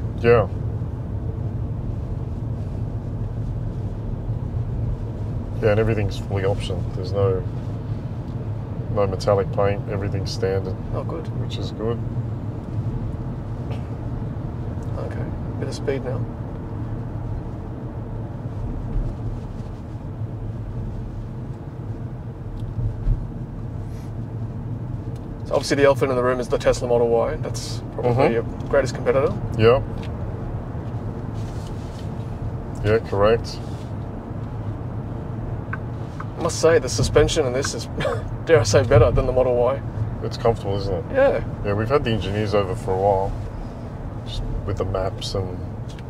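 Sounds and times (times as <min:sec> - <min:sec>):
road and tyre rumble: 0:00.0 - 0:46.0.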